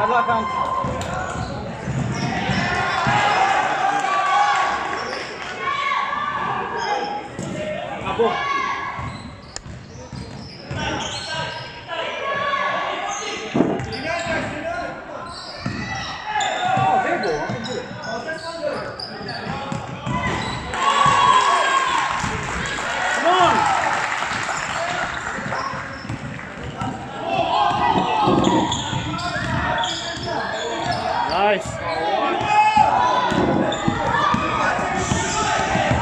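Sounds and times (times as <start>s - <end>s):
basketball bouncing on wooden floor: 25.4s - 27.0s.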